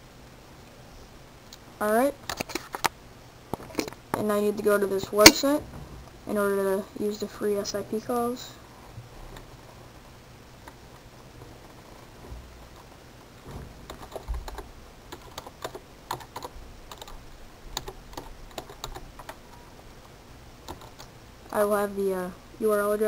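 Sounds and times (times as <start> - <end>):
typing on a computer keyboard: 13.9 - 19.4, 20.6 - 21.1.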